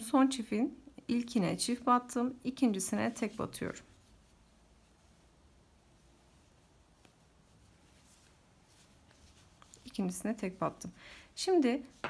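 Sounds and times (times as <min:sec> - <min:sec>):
soft yarn rustles: 0:00.0 - 0:12.0.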